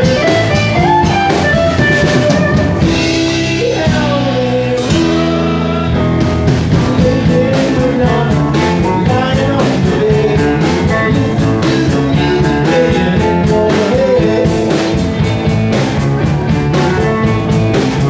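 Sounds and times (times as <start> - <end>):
drum hits: 0.0 - 18.0
electric guitar: 0.0 - 18.0
man singing into microphone: 3.2 - 6.0, 6.7 - 14.9.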